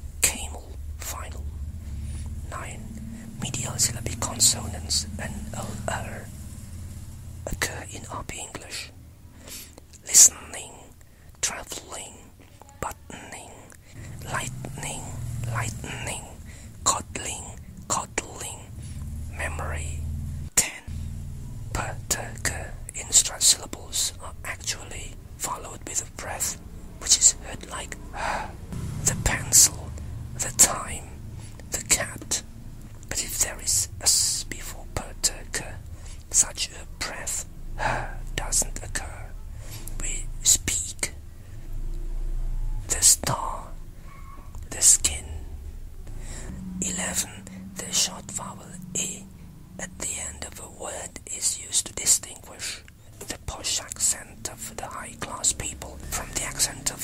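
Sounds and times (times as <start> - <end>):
person whispering: 0.0 - 6.4, 7.4 - 20.9, 21.7 - 32.4, 33.0 - 41.2, 42.8 - 43.8, 44.6 - 57.0.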